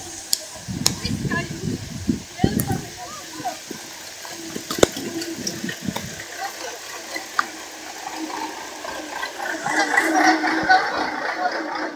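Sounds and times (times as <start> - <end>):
clicks of raindrops: 0.0 - 10.2
rain falling: 0.0 - 11.9.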